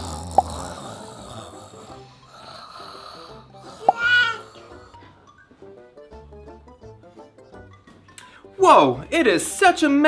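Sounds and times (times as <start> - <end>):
person snoring softly: 0.0 - 5.0.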